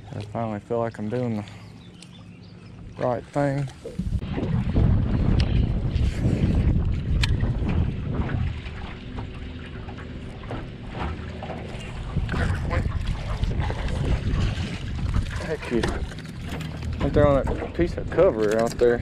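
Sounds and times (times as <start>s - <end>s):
wind rumbling on microphone: 1.4s - 19.0s.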